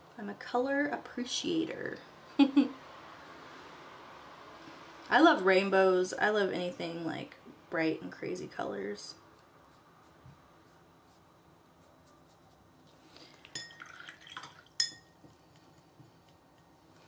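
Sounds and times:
glass dropper clinking on bottle: 13.5s - 15.1s.

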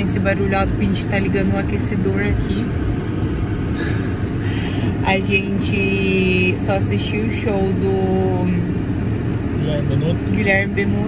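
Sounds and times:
car heater blower running: 0.0s - 11.0s.

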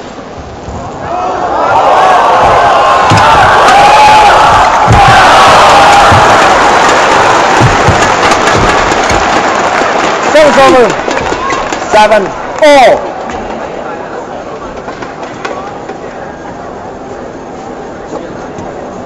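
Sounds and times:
crowd cheering and shouting: 0.8s - 13.7s
low thumps: 2.3s - 9.8s.

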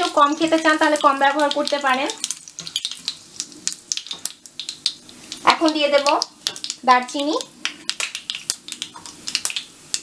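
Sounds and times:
spices sizzling in hot oil: 0.0s - 10.0s.

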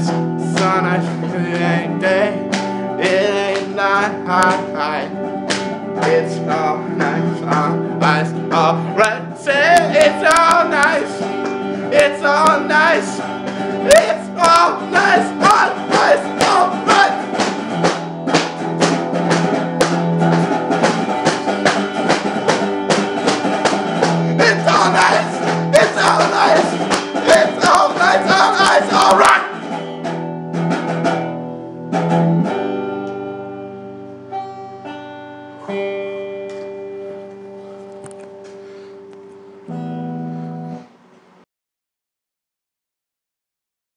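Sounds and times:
electric guitar chords: 0.0s - 41.1s
drums playing: 9.6s - 31.3s.

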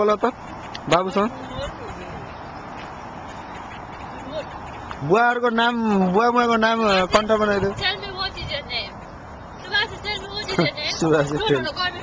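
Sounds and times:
wind hiss on microphone: 6.8s - 12.0s.

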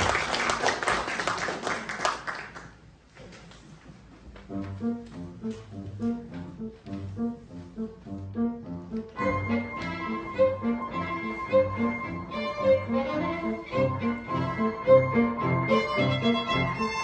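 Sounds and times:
piano low rhythmic notes: 4.0s - 17.0s.

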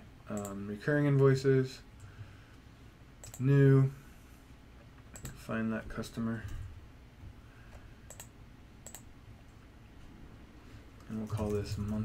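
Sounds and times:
faint low room hum: 0.0s - 12.0s
computer mouse clicks: 0.3s - 1.3s, 3.2s - 3.5s, 4.8s - 5.4s, 7.7s - 9.6s.

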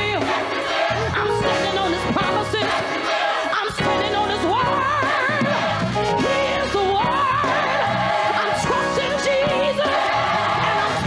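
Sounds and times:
gospel singing: 0.0s - 11.0s
instrumental backing: 0.0s - 11.0s
congregation shouting: 2.6s - 3.7s.

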